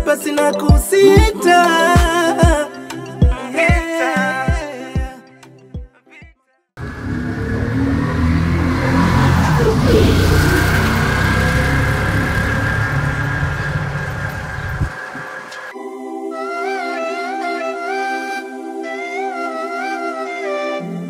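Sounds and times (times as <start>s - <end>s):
music: 0.0s - 6.7s, 15.8s - 21.0s
auto-rickshaw engine rumble: 6.8s - 15.7s
street noise: 6.8s - 15.8s.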